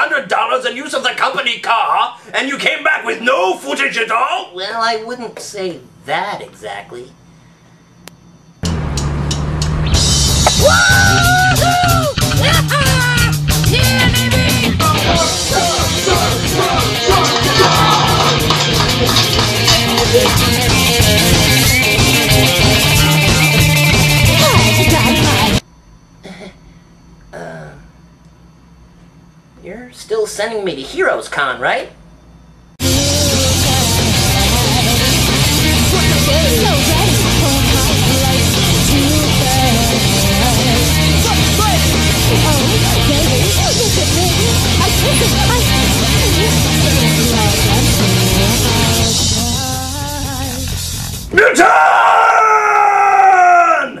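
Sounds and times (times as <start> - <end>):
punk rock held final note: 8.6 - 25.6, 32.8 - 49.5
person clearing throat: 26.2 - 26.7, 27.3 - 27.9.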